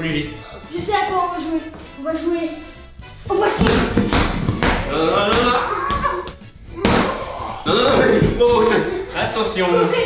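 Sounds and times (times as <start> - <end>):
exercise ball slap: 3.5 - 7.2.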